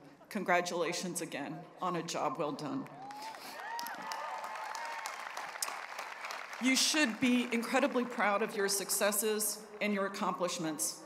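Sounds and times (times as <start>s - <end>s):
calls from crowd: 2.9s - 7.8s
crowd applauding: 2.9s - 9.0s.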